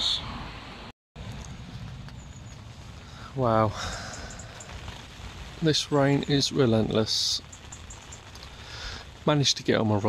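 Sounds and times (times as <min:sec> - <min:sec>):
rain pattering on fabric tent: 0:01.2 - 0:10.0.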